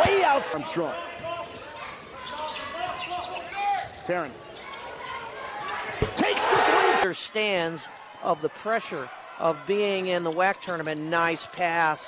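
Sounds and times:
crowd noise: 0.0s - 12.0s
sneaker squeaks on court: 1.4s - 6.2s.

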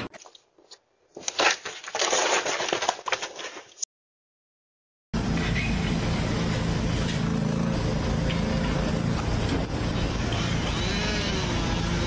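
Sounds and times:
engine running: 5.2s - 12.0s.

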